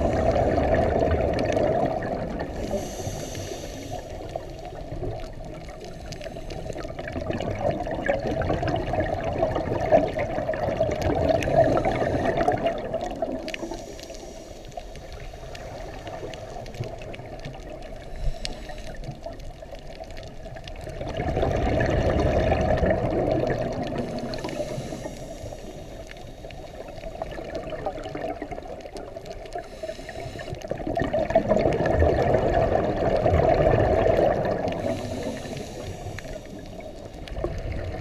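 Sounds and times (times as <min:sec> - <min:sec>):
bubbling exhalations underwater: 0:00.0 - 0:03.0, 0:06.8 - 0:13.8, 0:20.7 - 0:24.6, 0:27.2 - 0:29.5, 0:30.7 - 0:35.7
regulator hiss: 0:02.5 - 0:04.8, 0:13.6 - 0:16.6, 0:18.0 - 0:19.2, 0:24.0 - 0:27.2, 0:29.6 - 0:30.8, 0:34.8 - 0:37.2.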